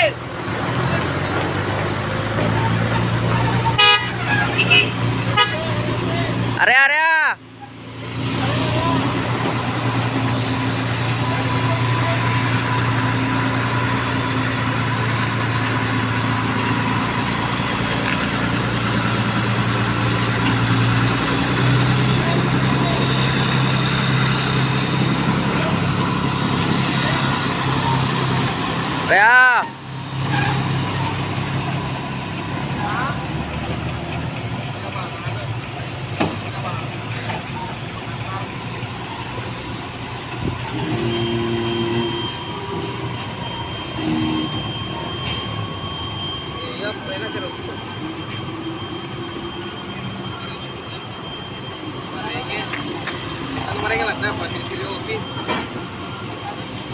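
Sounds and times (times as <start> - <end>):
heavy diesel machinery running: 0.0 - 56.9
short tooting signals: 40.7 - 56.8.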